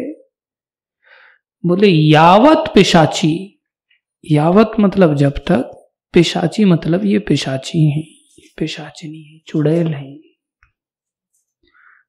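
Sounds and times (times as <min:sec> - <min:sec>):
soft intake of breath: 0:01.0 - 0:01.5, 0:11.6 - 0:12.0.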